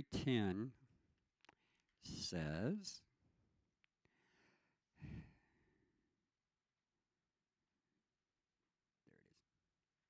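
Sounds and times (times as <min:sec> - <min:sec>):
faint breath: 0:04.0 - 0:05.9.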